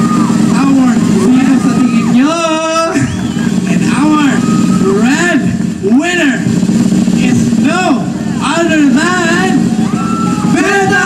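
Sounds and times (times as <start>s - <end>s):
people shouting over a pa: 9.6s - 11.0s.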